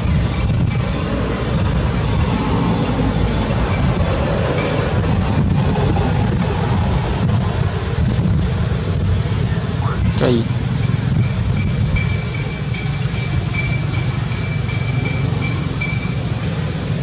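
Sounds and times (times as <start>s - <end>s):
loud low rumbling: 0.0s - 17.0s.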